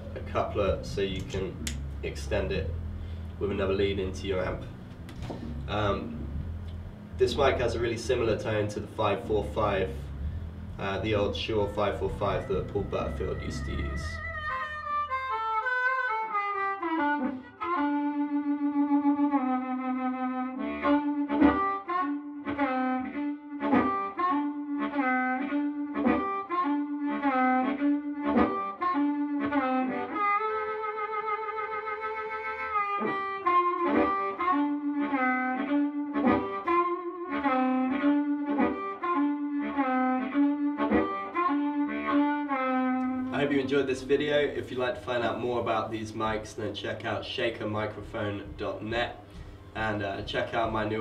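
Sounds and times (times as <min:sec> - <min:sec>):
blues harmonica: 0:00.0 - 0:46.4, 0:47.7 - 0:51.0.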